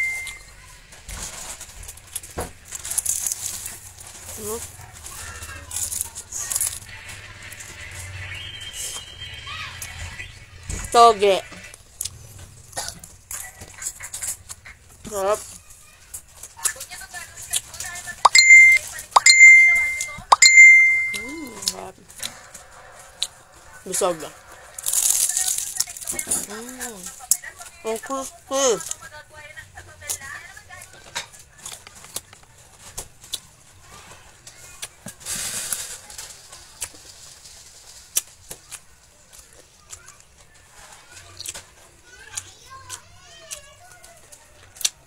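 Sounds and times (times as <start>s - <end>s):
bell-like chime with pop: 0.0s - 0.4s, 18.3s - 21.4s.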